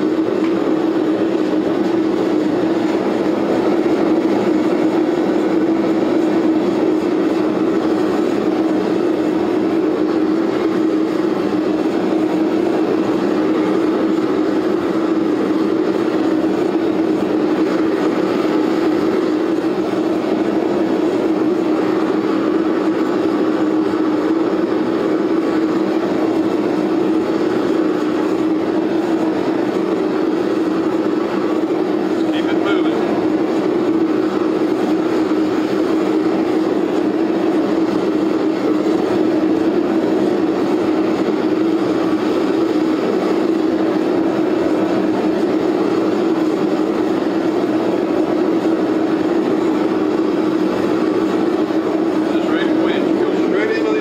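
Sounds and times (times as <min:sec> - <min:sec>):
forge burner rushing: 0:00.0 - 0:54.0.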